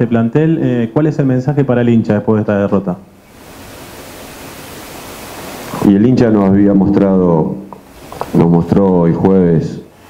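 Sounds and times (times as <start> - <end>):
man speaking: 0.0 - 3.1, 5.8 - 7.7, 8.3 - 9.9
background hiss: 0.0 - 10.0.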